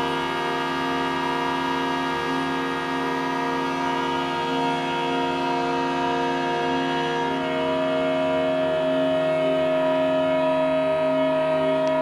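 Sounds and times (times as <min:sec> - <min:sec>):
organ pipes droning: 0:00.0 - 0:12.0.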